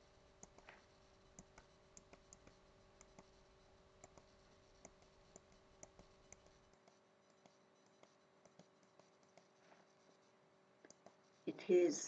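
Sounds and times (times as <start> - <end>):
faint electrical hum: 0.0 - 12.0
computer mouse clicks: 0.4 - 3.4, 4.0 - 9.5, 10.8 - 11.2.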